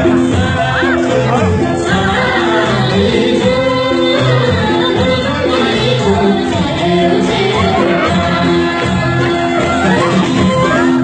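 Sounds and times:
band with repeating bass line: 0:00.0 - 0:11.0
voices singing: 0:00.0 - 0:11.0.

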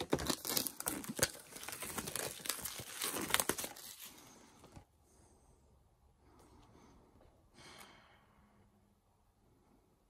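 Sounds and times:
plastic shrink-wrap tearing: 0:00.0 - 0:04.2.

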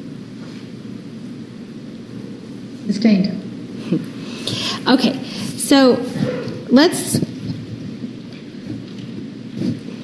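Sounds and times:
low rumbling room noise: 0:00.0 - 0:10.0.

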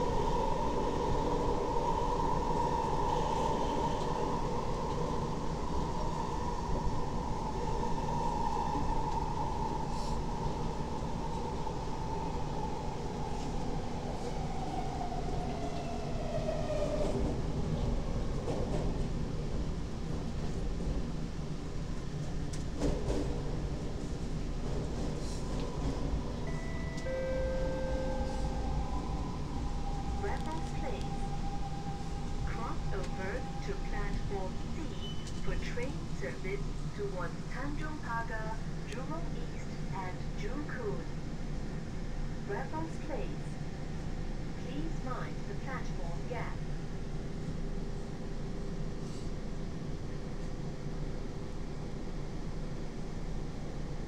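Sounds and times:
train rumbling on rails: 0:00.0 - 0:54.0
constant whine: 0:24.6 - 0:46.7
chime of held tones: 0:26.4 - 0:28.7.

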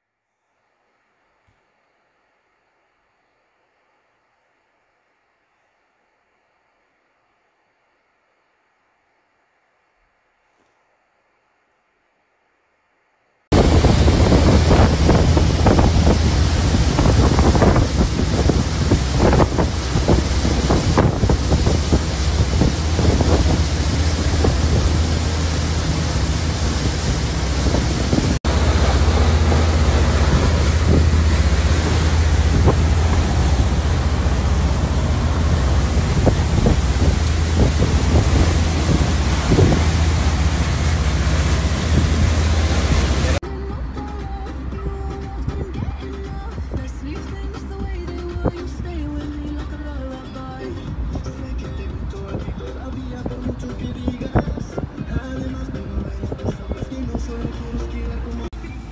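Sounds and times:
rushing water: 0:13.5 - 0:43.4
wind buffeting microphone: 0:13.5 - 0:43.4, 0:50.9 - 0:58.4
motorboat engine drone: 0:13.5 - 0:45.3.

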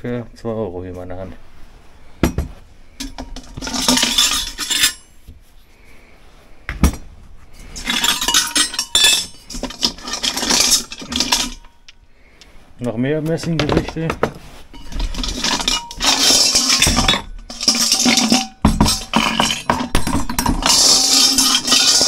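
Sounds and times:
metal tableware clinking: 0:02.2 - 0:05.1, 0:07.6 - 0:11.9, 0:14.7 - 0:22.0.

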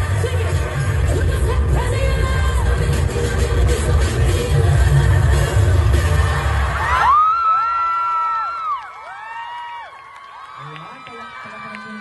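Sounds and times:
loud dance music with bass: 0:00.0 - 0:07.0
crowd cheering: 0:06.2 - 0:12.0
high-pitched whoops and screams: 0:06.6 - 0:12.0.

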